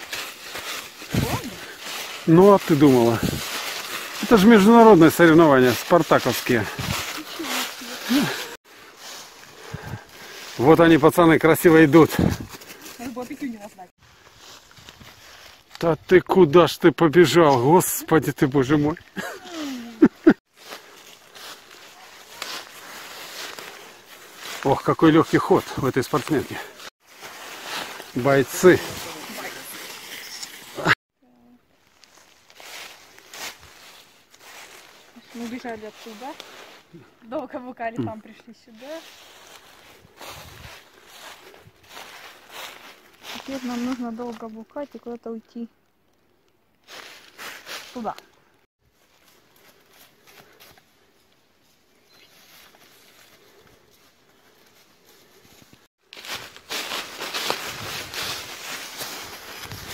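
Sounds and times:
footsteps in dry leaves: 0:00.0 - 0:16.1, 0:17.3 - 0:31.0, 0:31.8 - 0:37.2, 0:38.6 - 0:45.2, 0:46.8 - 0:59.9.

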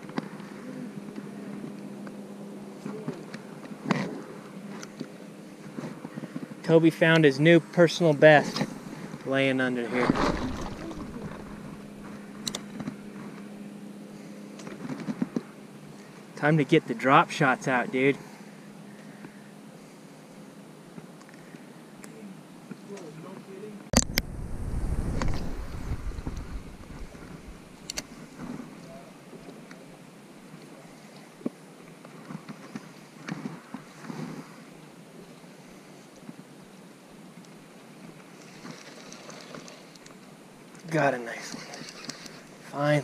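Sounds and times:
wind buffeting microphone: 0:24.0 - 0:27.9.

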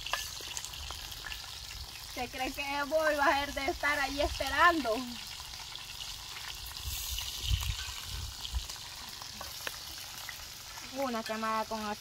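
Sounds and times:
chicken sizzling in hot oil: 0:00.0 - 0:12.0.

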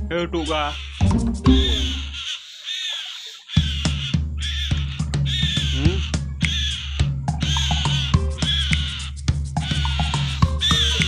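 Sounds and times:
myna calling: 0:00.3 - 0:11.0
music with heavy bass: 0:01.0 - 0:02.2, 0:04.9 - 0:11.0.

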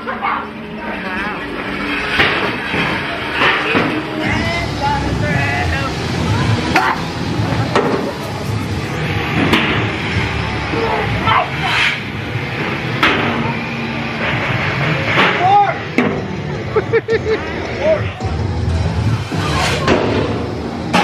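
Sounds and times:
crowd voices: 0:00.0 - 0:21.0.

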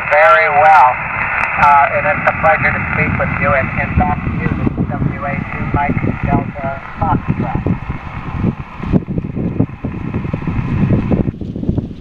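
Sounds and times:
radio receiver hiss: 0:00.0 - 0:11.3
wind buffeting microphone: 0:00.0 - 0:12.0.

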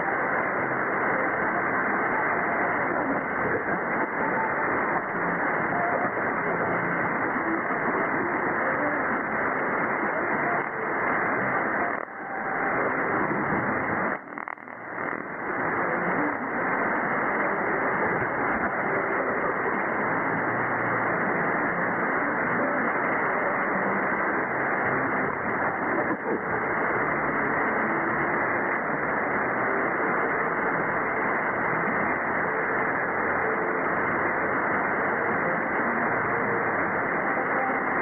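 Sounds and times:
muffled radio static: 0:00.0 - 0:38.0
weak radio station signal: 0:00.0 - 0:38.0.

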